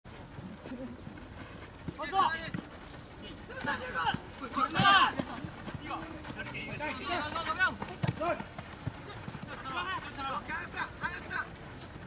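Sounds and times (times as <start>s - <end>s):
players shouting and calling: 0.1s - 12.0s.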